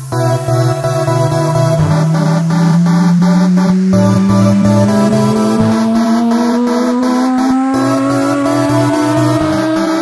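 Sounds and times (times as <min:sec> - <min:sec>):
bass: 0:00.0 - 0:10.0
electro house music: 0:00.0 - 0:10.0
synth riser gliding upward: 0:00.0 - 0:10.0.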